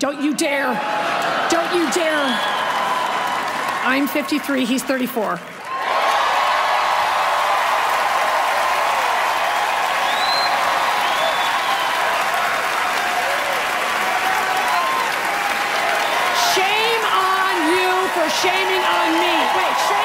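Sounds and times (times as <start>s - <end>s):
cheers and whoops: 0.6s - 3.9s, 5.6s - 20.0s
audience applauding: 0.8s - 20.0s.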